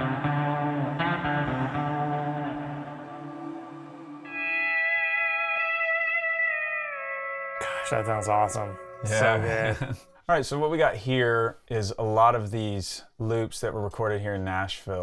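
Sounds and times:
steel guitar chords with echo: 0.0s - 9.9s.

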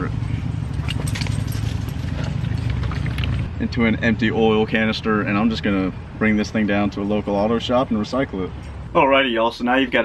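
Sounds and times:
oil pouring through funnel: 0.6s - 3.5s.

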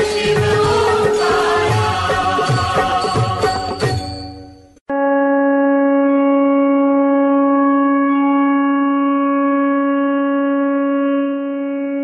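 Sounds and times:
long horn-like blown note: 4.9s - 12.0s.

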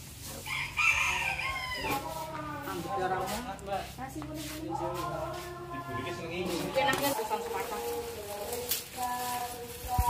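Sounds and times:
rooster crowing: 0.4s - 2.5s.

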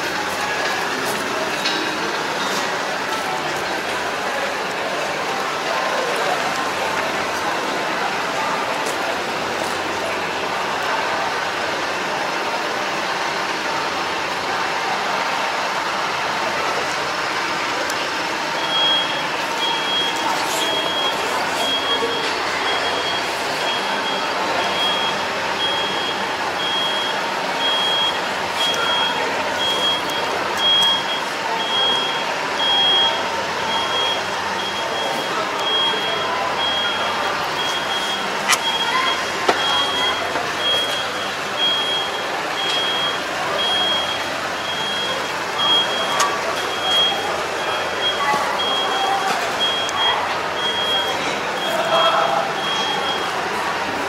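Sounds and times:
crowd hubbub: 0.0s - 54.0s
high electronic warning beeper: 18.6s - 53.4s.

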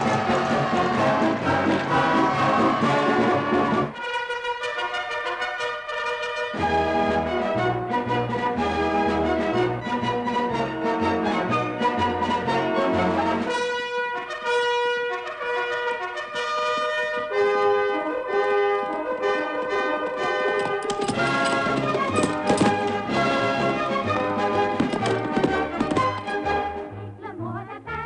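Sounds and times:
orchestral music led by brass: 0.0s - 25.0s
trumpets playing melody: 4.0s - 6.7s, 13.5s - 23.4s.

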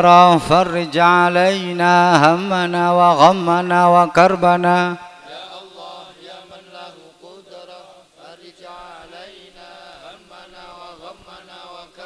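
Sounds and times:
men chanting prayers: 0.0s - 12.0s.

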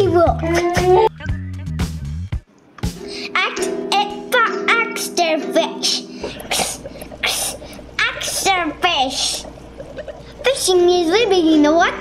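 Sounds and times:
low steady hum: 2.9s - 12.0s
person making breathy hisses: 6.3s - 7.8s.

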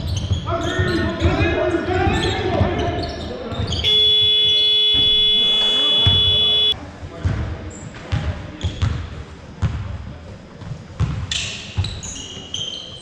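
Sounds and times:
players shouting: 3.8s - 6.8s
game buzzer blast: 3.9s - 6.8s
basketball bouncing on floor: 11.0s - 11.2s.

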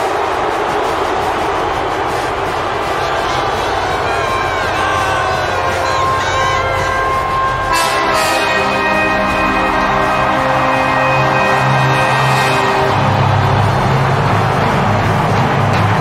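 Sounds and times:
stadium crowd screaming and cheering: 0.0s - 16.0s
high whoops: 2.8s - 11.6s.

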